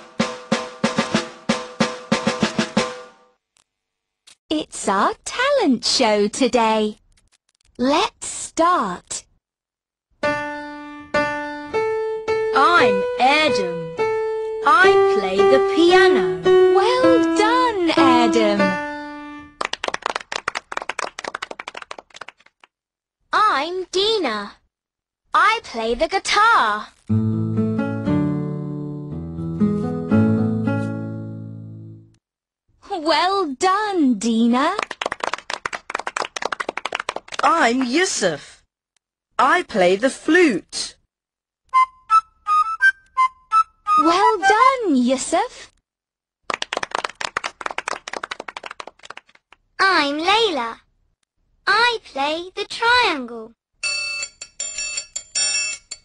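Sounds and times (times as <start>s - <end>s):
held musical note: 10.3s - 19.5s
hand clapping: 19.6s - 22.7s, 34.7s - 38.0s, 46.5s - 49.6s.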